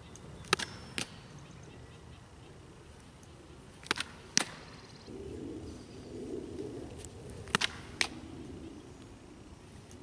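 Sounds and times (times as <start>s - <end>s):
low steady rumble: 4.7s - 10.0s.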